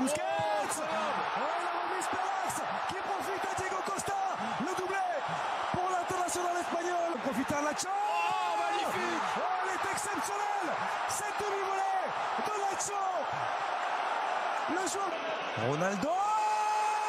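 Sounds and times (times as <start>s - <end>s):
commentator talking: 0.0s - 13.3s, 14.7s - 16.5s
stadium crowd noise: 0.0s - 17.0s.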